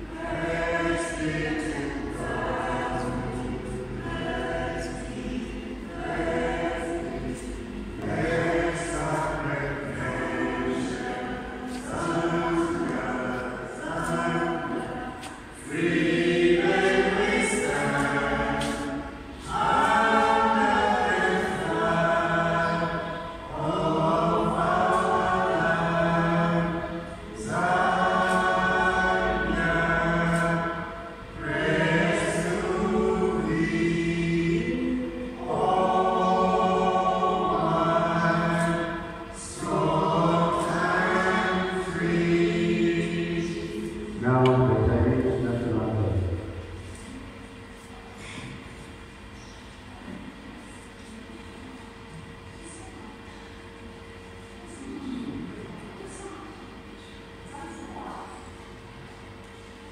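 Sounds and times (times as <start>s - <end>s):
group of voices singing anthem: 0.0s - 46.2s.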